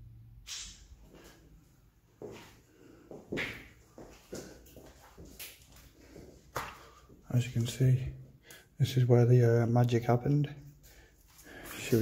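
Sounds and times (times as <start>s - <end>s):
footsteps on gritty tiled floor: 2.2s - 7.7s, 11.2s - 12.0s.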